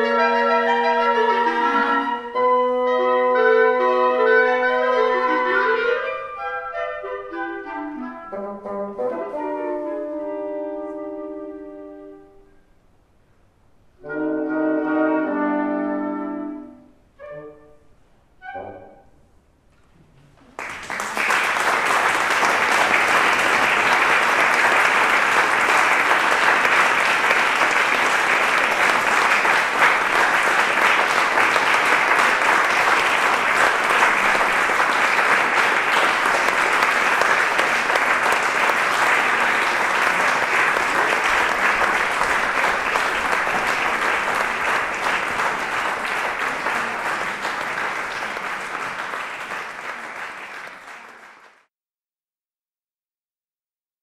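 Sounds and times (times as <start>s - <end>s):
audience applauding: 20.4s - 51.7s.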